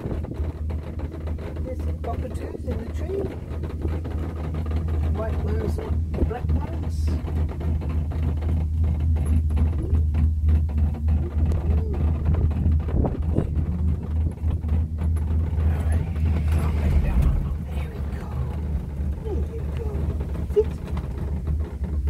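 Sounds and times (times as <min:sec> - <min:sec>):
cable car gondola rumble: 0:00.0 - 0:22.0.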